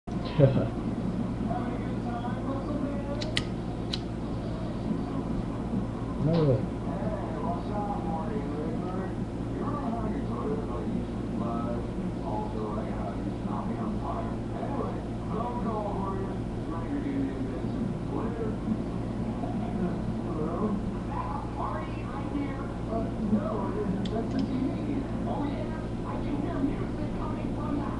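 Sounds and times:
steady low hum: 0.0 - 27.9
faint indistinct voices: 0.2 - 27.9
lighter flint wheel clicks: 3.2 - 4.0.

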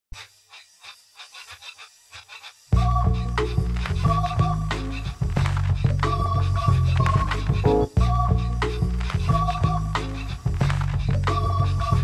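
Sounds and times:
rapid quiet panting: 4.9 - 7.7.

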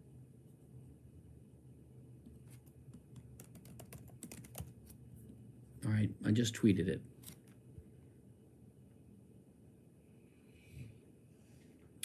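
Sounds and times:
faint keyboard typing: 2.2 - 5.4, 7.1 - 7.6.

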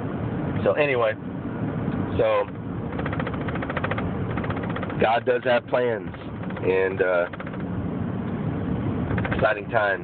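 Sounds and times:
car engine and road rumble: 0.0 - 10.0
fast rattling flutter: 2.9 - 5.1, 6.2 - 7.8.

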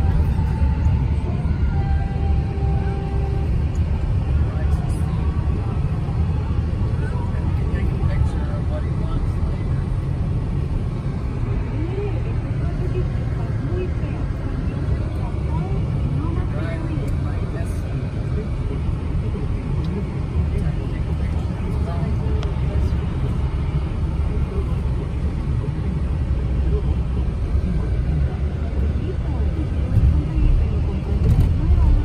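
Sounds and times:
car road and engine rumble: 0.0 - 32.0.

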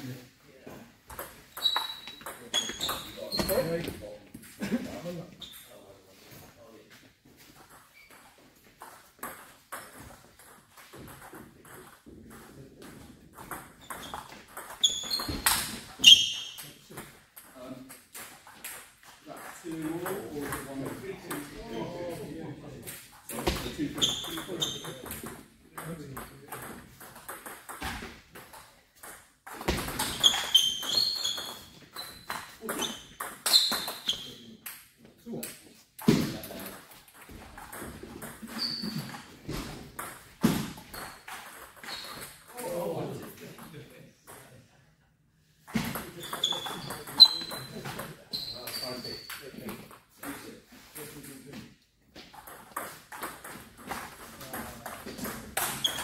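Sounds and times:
short high squeaks: 1.5 - 3.8, 13.8 - 16.8, 30.0 - 34.5, 38.5 - 39.2, 46.2 - 49.4, 55.6 - 56.0.

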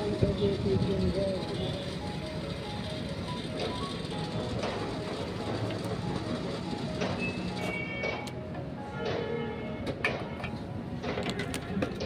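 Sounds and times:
fuel pump rushing: 0.0 - 8.4
faint music-like tones: 0.0 - 12.0.

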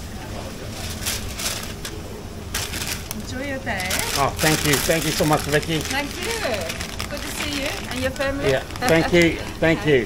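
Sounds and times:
steady low hum: 0.0 - 10.0
wrapping paper rustling: 0.6 - 9.7.

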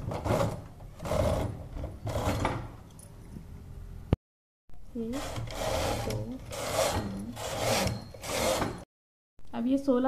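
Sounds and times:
knitting machine carriage rasping slide: 0.1 - 2.6, 5.1 - 8.8.

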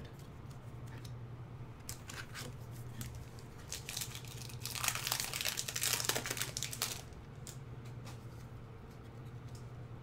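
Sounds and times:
plastic wrapper crinkling: 2.9 - 7.2.

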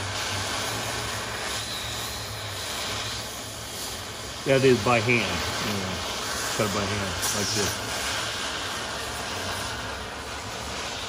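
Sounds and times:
cutting torch hissing roar: 0.0 - 11.0.

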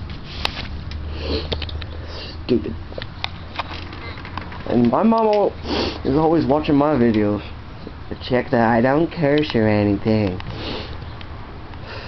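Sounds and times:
person sniffing: 0.3 - 2.5, 5.6 - 6.1, 10.5 - 11.0.

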